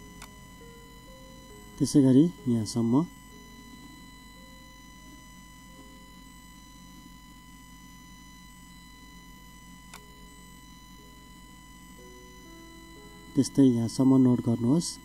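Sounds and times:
faint background music: 0.0 - 8.4, 9.0 - 15.0
high electrical whine: 0.0 - 15.0.

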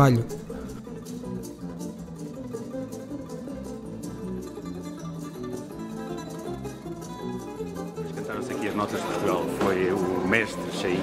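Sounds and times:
plucked guitar melody: 0.0 - 11.0.

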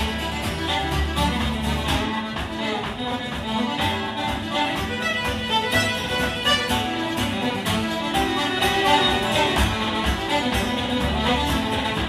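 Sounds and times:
fiddle melody: 0.0 - 12.0
guitar accompaniment: 0.0 - 12.0
steady beat: 0.0 - 12.0.

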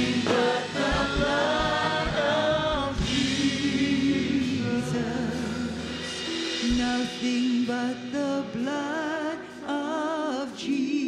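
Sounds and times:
gospel band and singers: 0.0 - 11.0.

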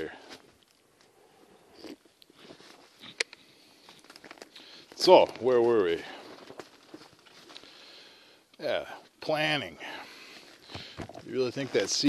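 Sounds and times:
rustling of can cozy: 10.4 - 12.0.

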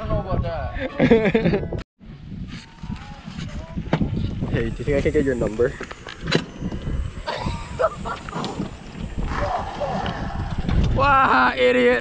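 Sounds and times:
wind buffeting microphone: 0.0 - 12.0
golf cart rolling on concrete: 4.6 - 11.0.

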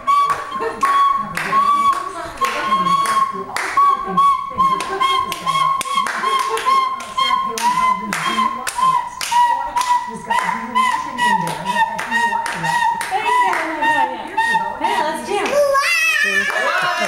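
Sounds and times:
child blowing plastic recorder: 0.0 - 15.0
hand claps: 0.2 - 3.8, 4.8 - 10.6, 11.4 - 13.7.

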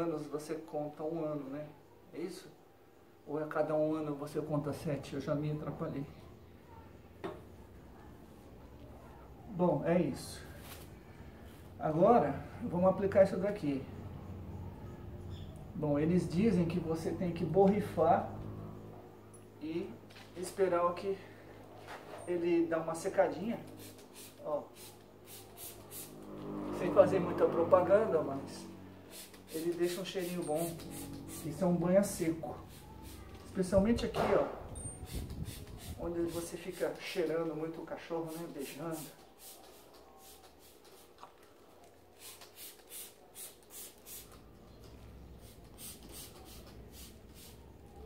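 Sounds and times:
spray bottle hissing: 23.7 - 26.3, 29.0 - 31.7, 32.6 - 33.5, 35.0 - 37.0, 38.2 - 41.3, 42.2 - 44.5, 45.4 - 47.7.

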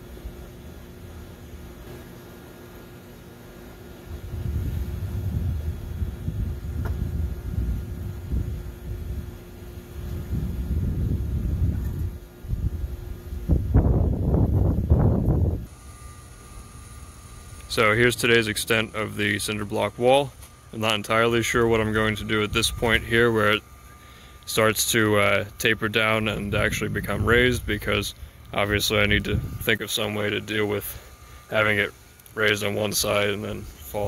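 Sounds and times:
low outdoor rumble: 0.0 - 34.0.

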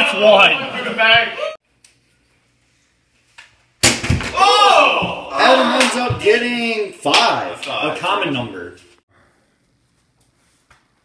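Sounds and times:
person shouting: 4.3 - 6.2.

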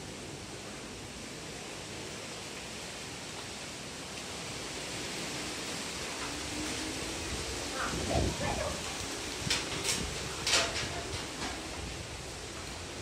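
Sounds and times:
storm hiss: 0.0 - 13.0.

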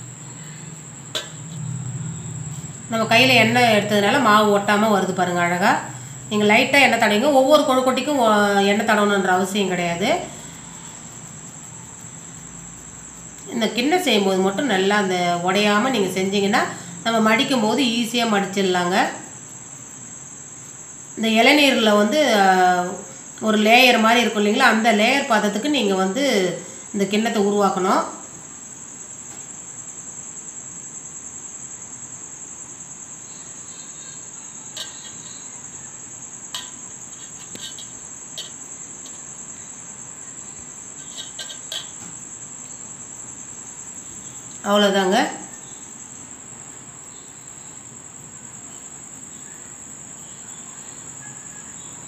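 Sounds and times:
cricket chirring: 0.0 - 52.0
faint background hiss: 0.0 - 52.0.

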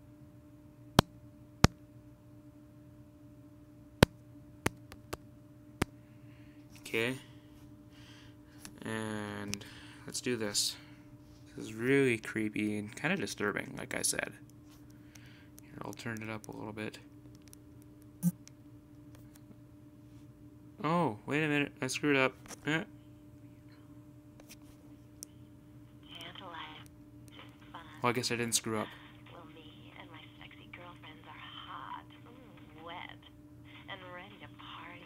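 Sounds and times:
faint steady hum: 0.0 - 35.0.

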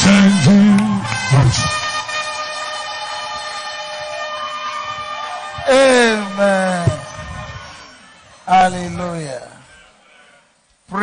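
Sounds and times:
murmur of congregation: 5.3 - 11.0.

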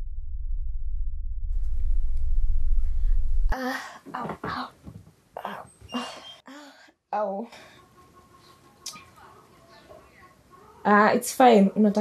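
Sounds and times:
low rumble: 0.0 - 3.6
woman moaning: 3.5 - 4.7, 5.4 - 6.8.

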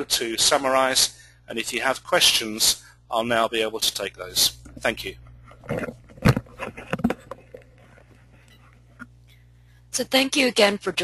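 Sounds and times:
low electrical hum: 0.0 - 11.0
breath: 1.2 - 1.5, 9.3 - 9.9.

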